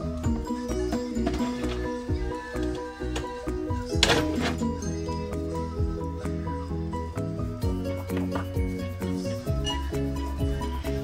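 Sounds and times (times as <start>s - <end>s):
background music with light beat: 0.0s - 11.0s.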